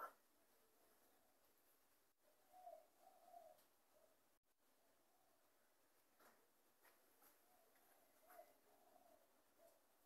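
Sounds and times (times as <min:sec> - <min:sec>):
faint low bird calls: 0:02.2 - 0:04.4, 0:07.3 - 0:10.0.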